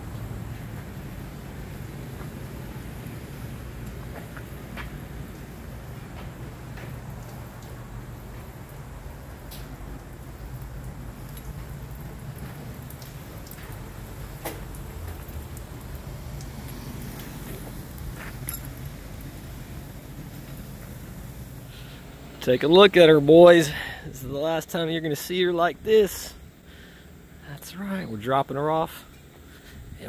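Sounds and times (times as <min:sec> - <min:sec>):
water dripping off truck: 0:00.0 - 0:29.9
low steady rumble: 0:00.0 - 0:30.0.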